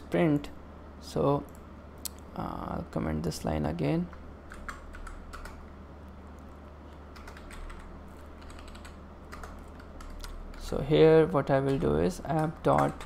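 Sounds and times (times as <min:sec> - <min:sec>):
low steady hum: 0:00.0 - 0:13.0
keyboard keys tapping: 0:07.2 - 0:10.4, 0:11.6 - 0:13.0.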